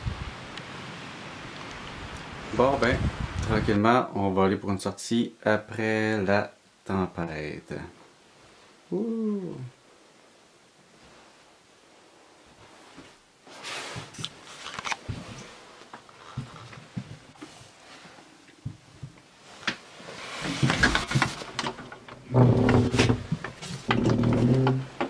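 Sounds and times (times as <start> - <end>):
door opening: 20.3 - 25.0
knocks and clicks of handling things: 20.4 - 25.0.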